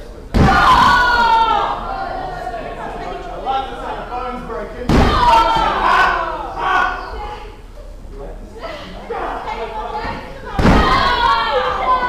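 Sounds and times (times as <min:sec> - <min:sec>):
crowd chatter: 0:00.0 - 0:12.0
body slam on ring canvas: 0:00.3 - 0:01.1, 0:04.9 - 0:05.7, 0:10.6 - 0:11.2
loud shouting: 0:00.3 - 0:03.0, 0:04.9 - 0:07.6, 0:08.6 - 0:12.0.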